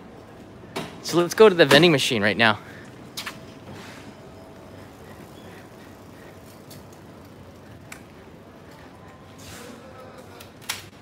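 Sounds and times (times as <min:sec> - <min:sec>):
traffic hum: 0:00.0 - 0:11.0.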